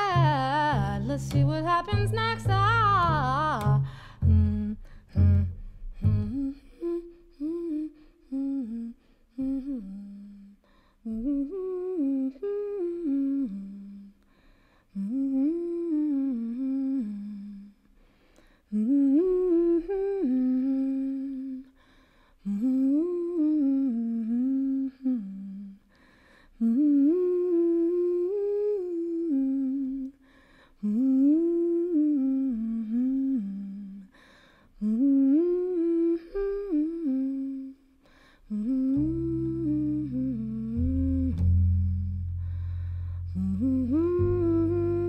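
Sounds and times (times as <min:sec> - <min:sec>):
plucked double bass note: 0:00.0 - 0:07.0, 0:38.7 - 0:45.0
woman humming a melody: 0:00.0 - 0:14.2, 0:14.9 - 0:17.8, 0:18.7 - 0:21.8, 0:22.4 - 0:25.9, 0:26.6 - 0:30.2, 0:30.8 - 0:34.1, 0:34.8 - 0:45.0.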